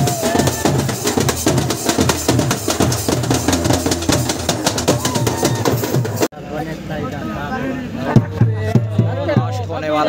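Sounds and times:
fast drumming with sticks: 0:00.0 - 0:06.3.

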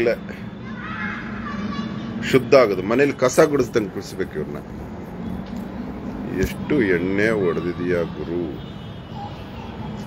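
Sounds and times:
faint distant voices: 0:00.0 - 0:10.0
man's voice: 0:06.2 - 0:08.6.

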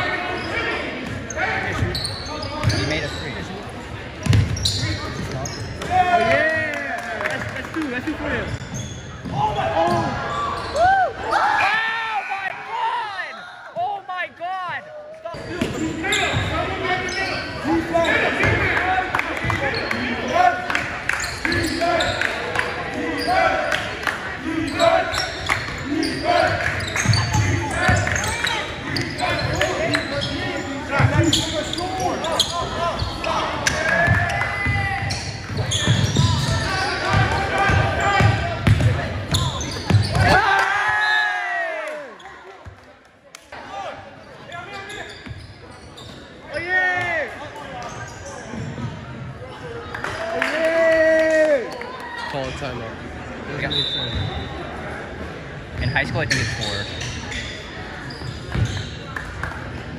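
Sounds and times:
sneakers squeaking: 0:00.0 - 0:06.0, 0:08.2 - 0:11.0, 0:15.3 - 0:23.8, 0:24.5 - 0:41.2, 0:44.2 - 0:49.8, 0:53.2 - 0:59.9
basketball bouncing: 0:04.2 - 0:04.6, 0:37.1 - 0:40.3.

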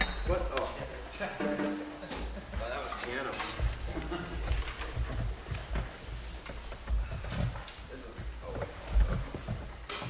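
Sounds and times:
rustling and shuffling: 0:00.0 - 0:10.0.

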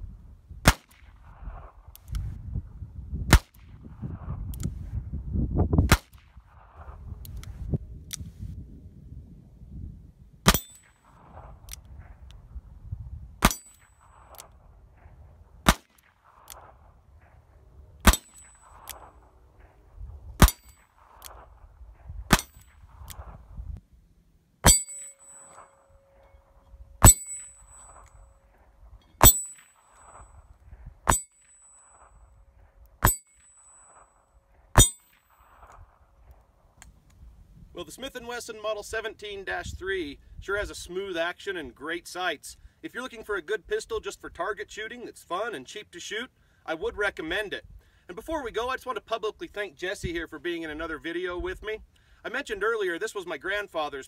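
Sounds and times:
bullet dinging steel target: 0:10.4 - 0:12.2, 0:13.4 - 0:17.4, 0:18.0 - 0:19.7, 0:20.4 - 0:21.5, 0:22.3 - 0:23.3, 0:24.6 - 0:35.8.

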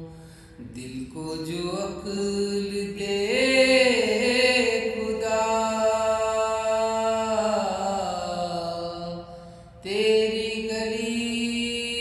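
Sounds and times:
man singing long held notes: 0:00.0 - 0:12.0.

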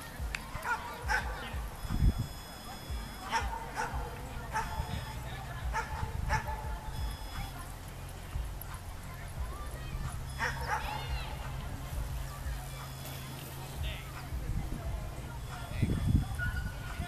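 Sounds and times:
low steady rumble: 0:00.0 - 0:17.0.

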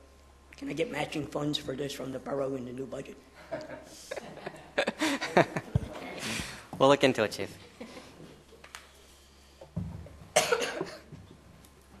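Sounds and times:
person coughing: 0:10.4 - 0:11.1.

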